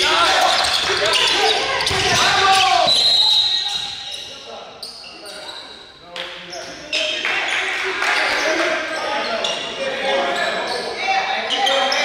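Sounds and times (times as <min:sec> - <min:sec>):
voices calling out: 0:00.0 - 0:05.9, 0:06.5 - 0:12.0.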